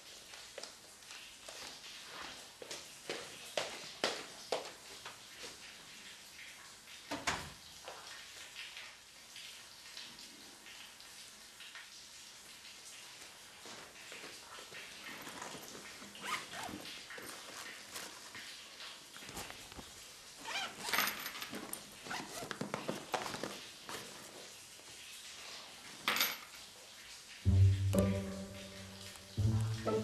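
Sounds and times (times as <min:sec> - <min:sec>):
handbag rustling: 0:20.4 - 0:24.0.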